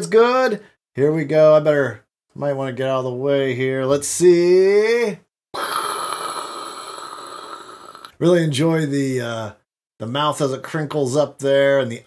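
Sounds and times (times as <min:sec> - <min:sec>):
cartoon fire-breath hissing rush: 0:05.6 - 0:08.1.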